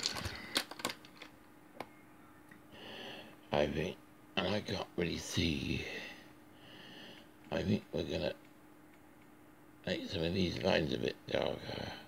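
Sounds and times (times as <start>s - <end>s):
wooden pencils clicking: 0.0s - 1.3s.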